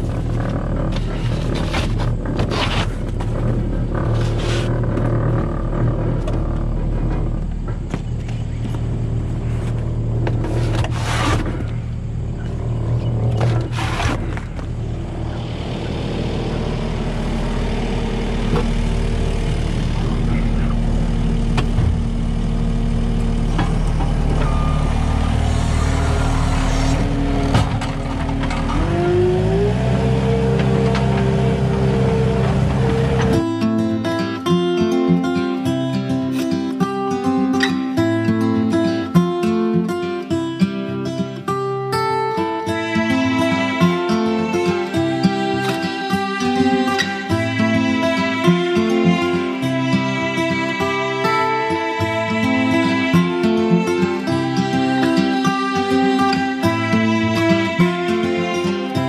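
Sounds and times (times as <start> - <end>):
loader engine idling: 0.0 - 35.8, 42.4 - 59.0.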